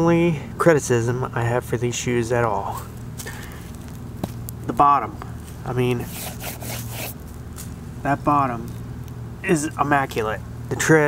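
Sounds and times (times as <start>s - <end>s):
steady low hum: 0.0s - 11.0s
shoe rubbing and scraping: 5.4s - 7.8s.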